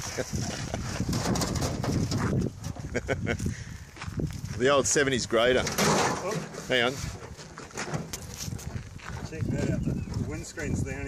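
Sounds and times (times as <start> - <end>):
car body creaking and knocking: 1.1 - 2.5.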